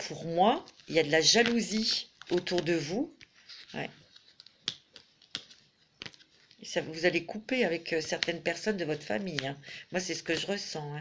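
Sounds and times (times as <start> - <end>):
tarot cards clicking: 0.6 - 6.6, 7.9 - 9.5.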